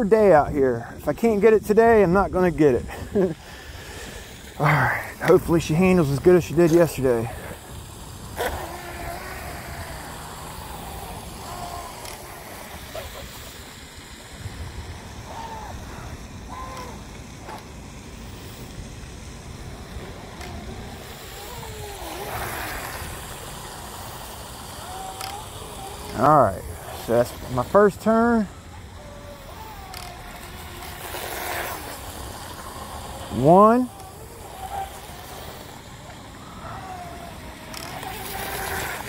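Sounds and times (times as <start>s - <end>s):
distant electric boat motor: 0.0s - 39.0s
low outdoor rumble: 0.0s - 39.0s.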